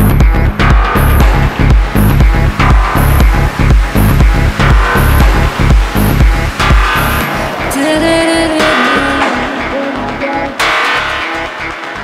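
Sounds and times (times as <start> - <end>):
kick drum beat: 0.0 - 7.3
bass notes: 0.0 - 12.0
held synth line: 0.0 - 12.0
bright crash hit: 0.8 - 9.6.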